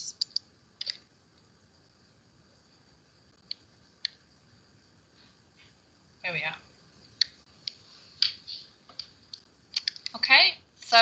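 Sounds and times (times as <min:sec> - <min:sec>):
faint hiss: 0:00.0 - 0:11.0
computer mouse clicks: 0:00.2 - 0:01.0, 0:07.2 - 0:10.2.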